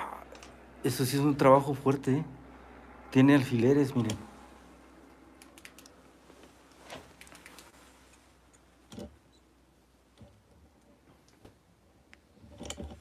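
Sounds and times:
low steady background noise: 0.0 - 13.0
faint clicks and light taps: 5.1 - 9.1.

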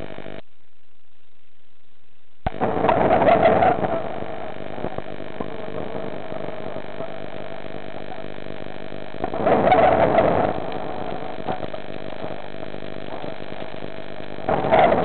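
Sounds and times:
electrical hum: 0.0 - 15.0.

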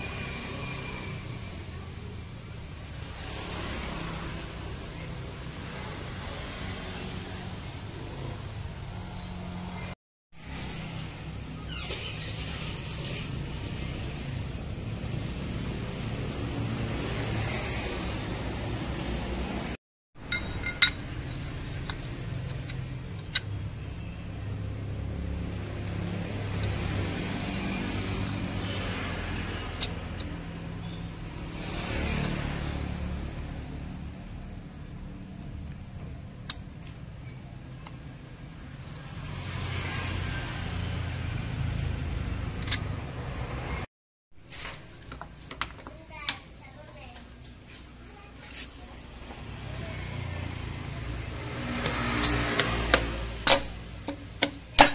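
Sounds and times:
road traffic hum: 0.0 - 54.9
sharp metallic clicks: 51.7 - 54.9.

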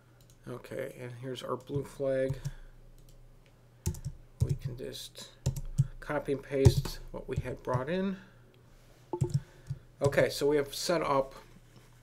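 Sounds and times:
low room hum: 0.0 - 12.0
keyboard keys clicking: 9.2 - 9.4.

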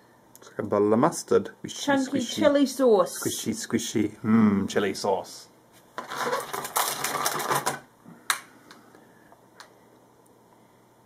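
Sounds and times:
plastic crackling and rustling: 5.9 - 7.9.

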